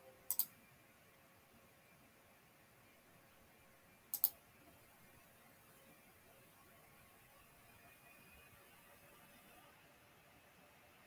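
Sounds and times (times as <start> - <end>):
computer mouse clicks: 0.3 - 0.5, 4.1 - 4.4.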